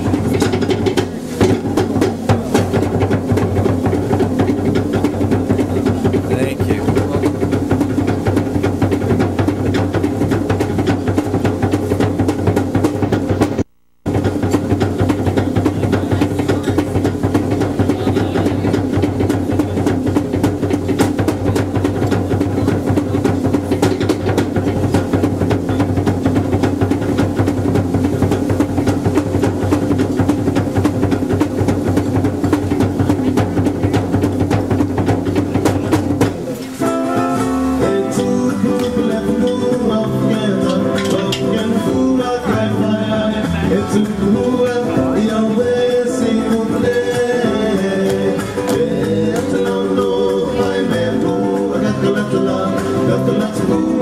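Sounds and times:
fast steady drumming: 0:00.0 - 0:54.0
voices singing over drums: 0:00.0 - 0:54.0.

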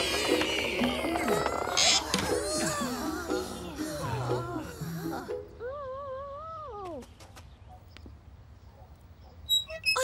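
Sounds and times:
cartoon dinosaur moan: 0:00.0 - 0:06.3.

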